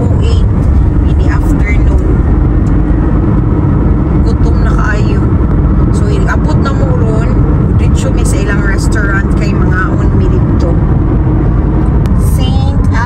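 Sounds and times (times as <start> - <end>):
car cabin road and engine rumble: 0.0 - 13.0.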